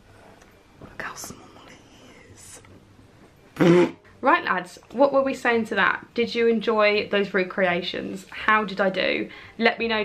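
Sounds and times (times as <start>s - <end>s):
woman whispering breathily: 1.0s - 2.6s.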